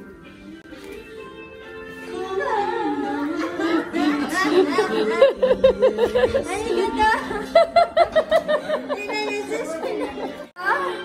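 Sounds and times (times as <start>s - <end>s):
people chattering: 2.1s - 11.0s.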